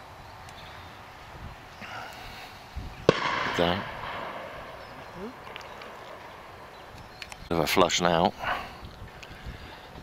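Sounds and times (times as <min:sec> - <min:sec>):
wind hiss: 0:00.0 - 0:10.0.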